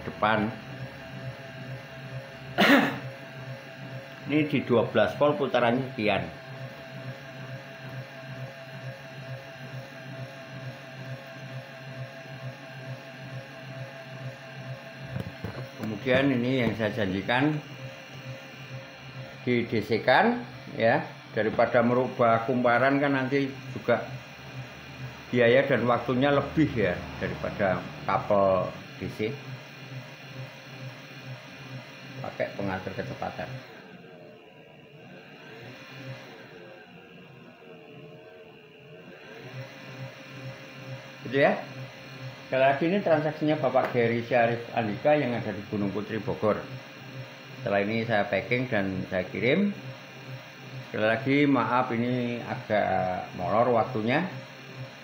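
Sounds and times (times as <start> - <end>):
motor humming: 0.0 - 55.0.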